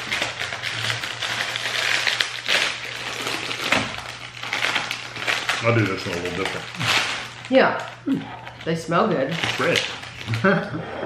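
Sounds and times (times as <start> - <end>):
plastic bag crinkling: 0.0 - 10.7.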